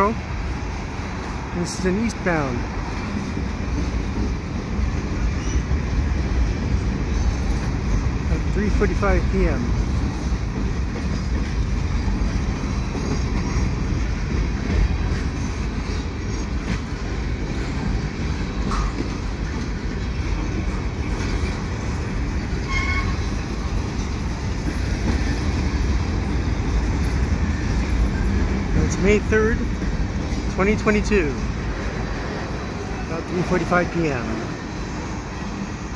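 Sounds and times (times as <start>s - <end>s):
steel wheels running on rails: 0.0s - 35.9s.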